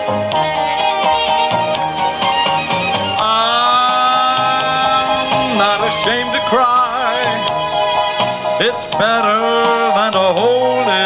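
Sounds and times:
recorded backing track: 0:00.0 - 0:11.0
man singing into microphone: 0:03.2 - 0:07.6, 0:08.6 - 0:11.0.

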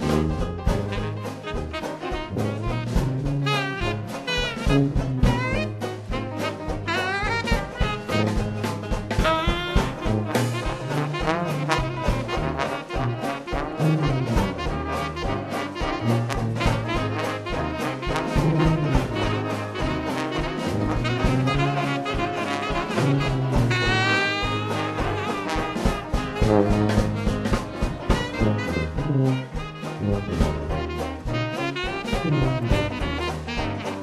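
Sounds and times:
drums keeping steady beat: 0:00.0 - 0:34.0
jazz band playing: 0:00.0 - 0:34.0
trombone: 0:00.0 - 0:34.0
trumpet: 0:00.0 - 0:34.0
tuba bass: 0:00.0 - 0:34.0.

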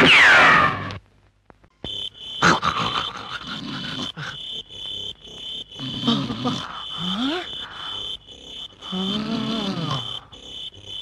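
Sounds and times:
crickets chirping: 0:01.8 - 0:11.0
low vocal sounds: 0:08.9 - 0:10.2.

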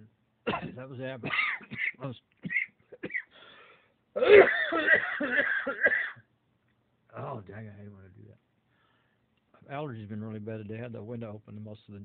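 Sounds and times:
man coughing: 0:00.5 - 0:03.4, 0:04.2 - 0:06.2.

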